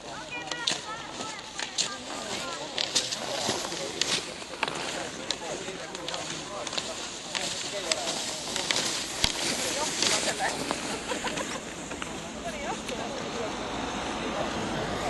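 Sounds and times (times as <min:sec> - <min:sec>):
ski poles clicking: 0:00.0 - 0:13.2
people talking: 0:00.0 - 0:15.0
skis scraping on snow: 0:00.0 - 0:15.0.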